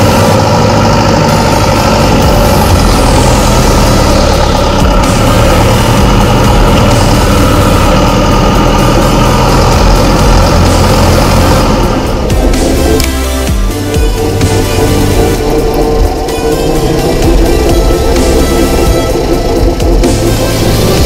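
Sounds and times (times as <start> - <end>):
tractor diesel engine running: 0.0 - 21.0.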